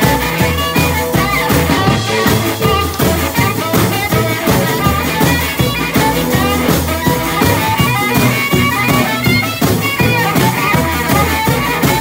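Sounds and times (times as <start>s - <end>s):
drum kit beat: 0.0s - 12.0s
electric guitar: 0.0s - 12.0s
harmonica: 0.0s - 12.0s
plucked double bass: 0.0s - 12.0s.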